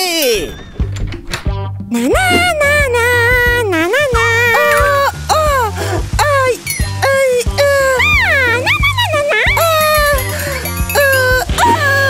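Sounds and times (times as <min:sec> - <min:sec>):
cartoon background music: 0:00.0 - 0:12.0
cartoon character exclamation: 0:06.4 - 0:12.0.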